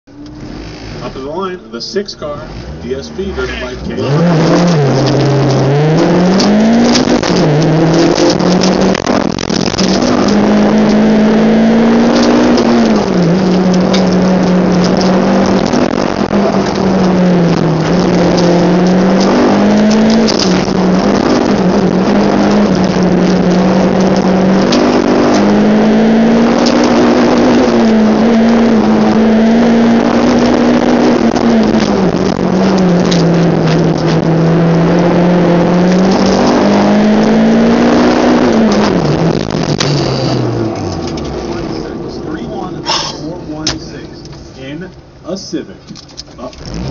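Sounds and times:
car engine revving from cabin: 0.1 - 45.0, 46.4 - 46.9.

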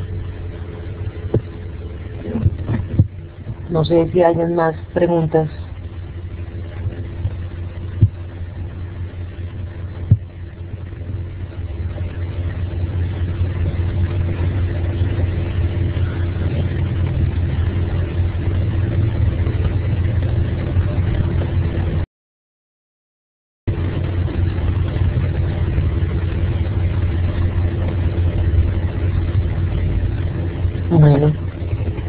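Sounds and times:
low rumble with hum: 0.0 - 22.1, 23.7 - 32.0.

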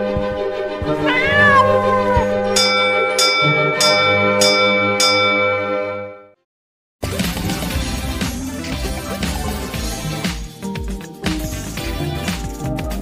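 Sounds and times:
cat meowing: 1.0 - 2.3
ringing chime notes: 2.5 - 6.4
intro music: 7.0 - 13.0.

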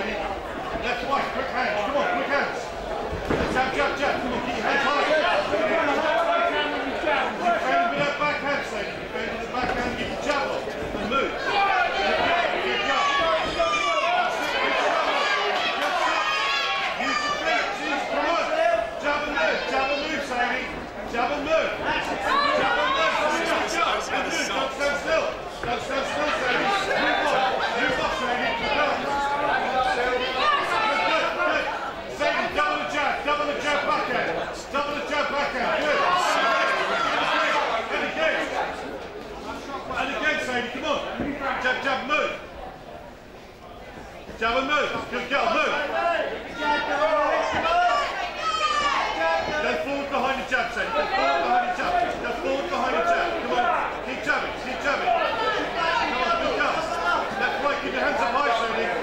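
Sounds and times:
voices calling out and talking: 0.0 - 59.0.

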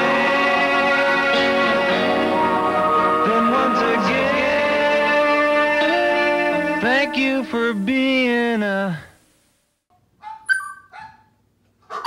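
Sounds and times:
dog barking sharply: 10.2 - 11.3
small dog yipping and whining: 10.2 - 11.3.

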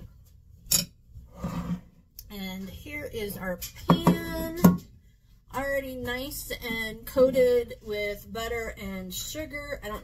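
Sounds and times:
bowl scraping on counter: 1.2 - 2.0.

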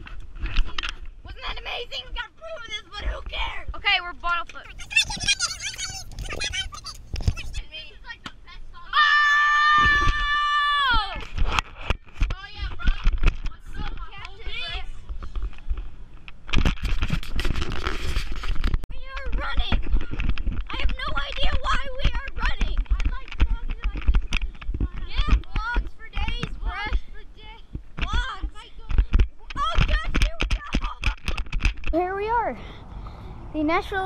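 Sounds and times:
children shouting and chattering: 4.6 - 11.2
child shrieking: 4.7 - 7.6.

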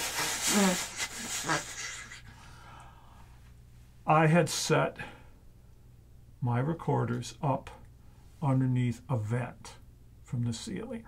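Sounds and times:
man blowing into cupped hand: 0.0 - 2.2
short voiced sounds: 0.0 - 2.3.

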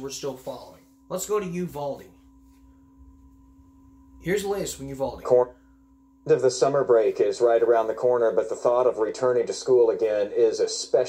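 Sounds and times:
low hum: 0.0 - 11.0
thin high whine: 0.0 - 11.0.

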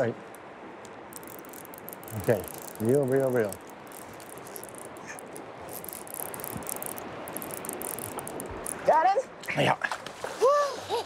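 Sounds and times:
fishing reel ratcheting clicks: 1.1 - 8.8.

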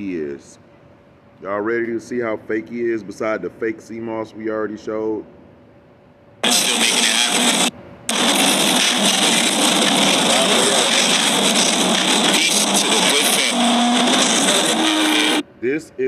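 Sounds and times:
faint voices: 6.4 - 15.4
loud rushing noise: 6.4 - 15.4.

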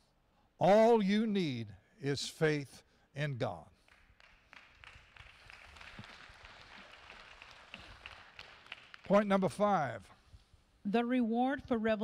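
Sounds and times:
scattered applause: 3.8 - 9.6.

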